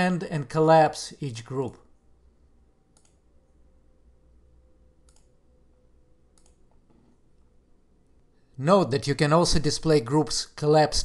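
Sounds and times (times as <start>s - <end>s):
faint computer mouse clicks: 2.9s - 3.2s, 5.1s - 5.3s, 6.4s - 7.1s.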